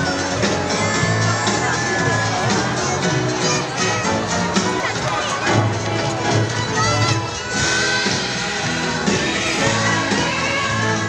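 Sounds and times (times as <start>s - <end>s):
crowd cheering: 0.0s - 11.0s
parade music: 0.0s - 11.0s
children shouting: 6.4s - 11.0s.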